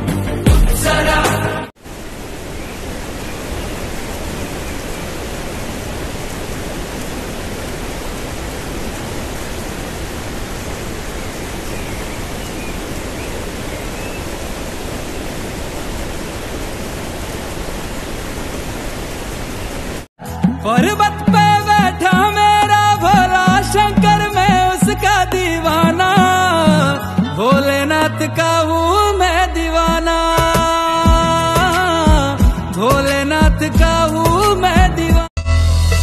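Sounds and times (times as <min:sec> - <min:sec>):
music: 0:00.0 - 0:01.7, 0:20.2 - 0:36.0
waterfall rushing: 0:00.8 - 0:26.8.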